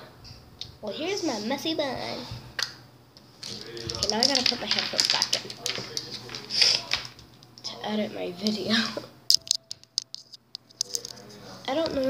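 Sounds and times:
device handling clicks and scratches: 0:09.3 - 0:11.3.

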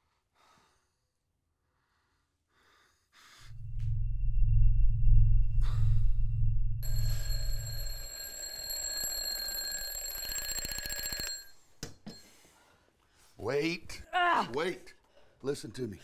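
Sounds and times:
loud deep drone: 0:03.5 - 0:07.2
alarm clock bells ringing: 0:06.8 - 0:12.3.

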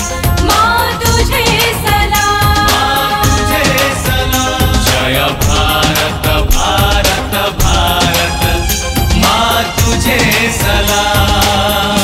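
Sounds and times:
male voices singing: 0:01.4 - 0:12.0.

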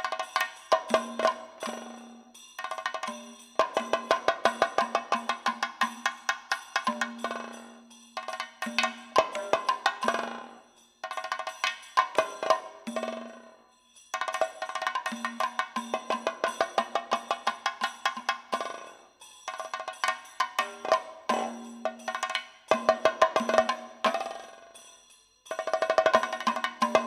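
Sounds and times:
ringing metallic percussion strikes: 0:00.0 - 0:27.0.

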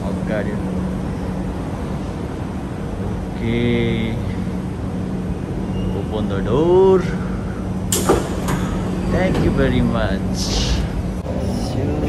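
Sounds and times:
steady low hum: 0:00.0 - 0:12.0
train doors sliding open: 0:07.7 - 0:11.1.

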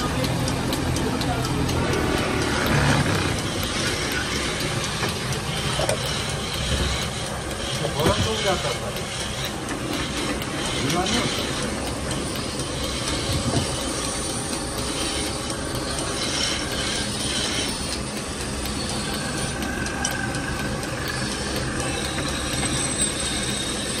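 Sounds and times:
workshop machinery running: 0:00.0 - 0:24.0.

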